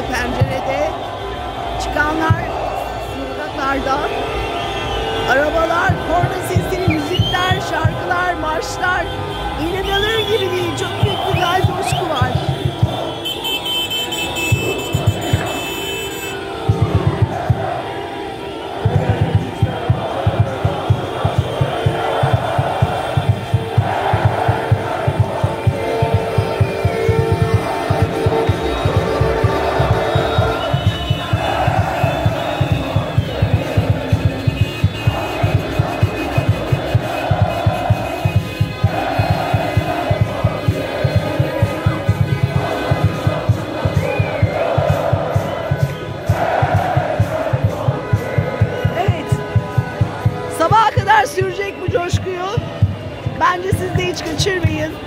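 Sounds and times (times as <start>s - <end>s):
long steady horn tone: 0.0s - 44.0s, 47.2s - 55.0s
crowd shouting and chanting: 0.0s - 55.0s
loud music with fast beat: 10.0s - 13.2s, 18.8s - 54.9s.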